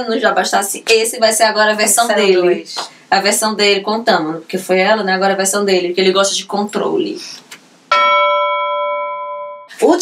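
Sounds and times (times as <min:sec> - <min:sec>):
bell-like chime: 0:07.9 - 0:09.8.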